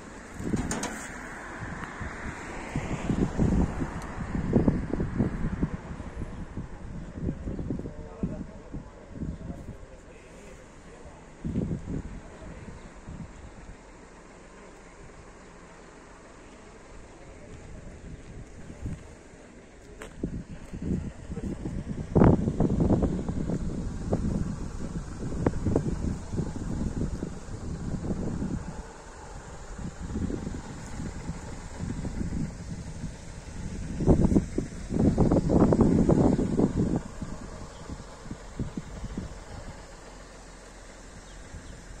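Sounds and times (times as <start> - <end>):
wind buffeting microphone: 0.0 - 10.0, 11.0 - 14.0, 17.0 - 42.0.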